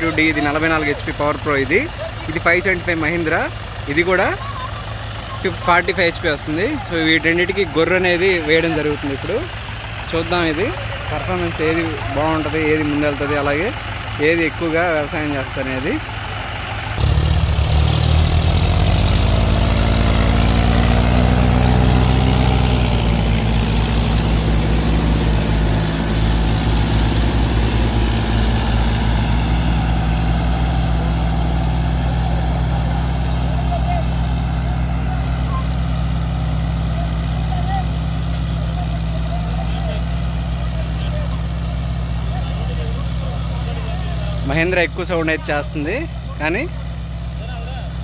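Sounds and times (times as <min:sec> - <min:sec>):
diesel tractor engines: 0:00.0 - 0:48.0.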